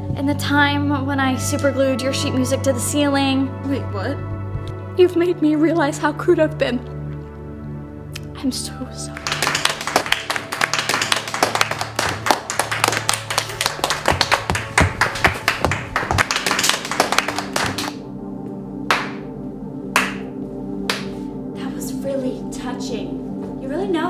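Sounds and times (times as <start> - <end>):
fast hand clapping: 9.2 - 18.0, 18.9 - 19.2, 20.0 - 20.3, 20.9 - 21.1
step dancing foot taps: 13.8 - 16.5.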